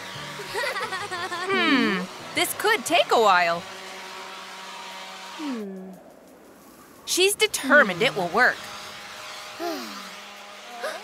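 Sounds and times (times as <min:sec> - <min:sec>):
falling vocal murmur: 0:01.5 - 0:02.1, 0:05.4 - 0:06.1.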